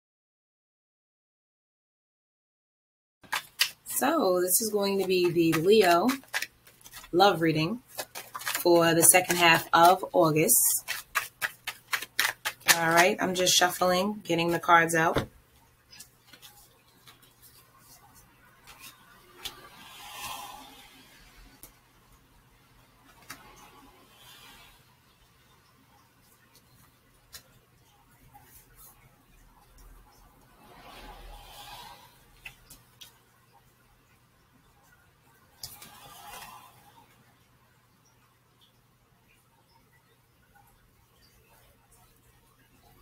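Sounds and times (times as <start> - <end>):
cards being shuffled: 3.2 - 14.0, 15.9 - 19.6
card snapping: 10.8 - 12.8.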